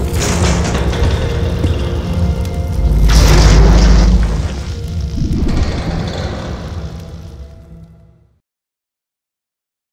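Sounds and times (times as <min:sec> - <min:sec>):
explosion rumble: 0:00.0 - 0:07.7.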